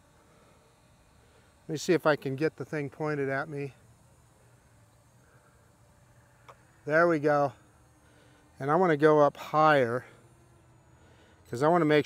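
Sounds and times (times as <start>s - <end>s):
faint background hum: 0.0s - 12.0s
man talking: 1.7s - 3.8s, 6.9s - 7.6s, 8.6s - 10.2s, 11.5s - 12.0s.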